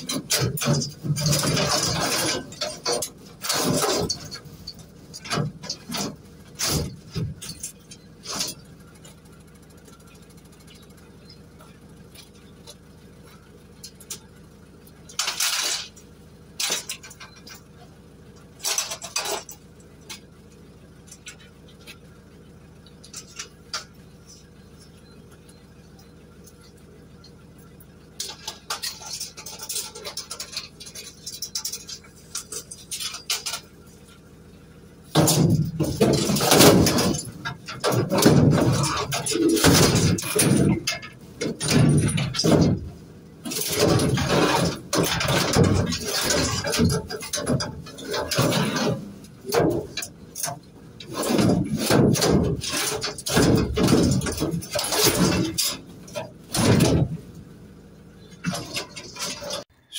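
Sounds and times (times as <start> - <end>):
scrap metal clanking: 0.0 - 59.9.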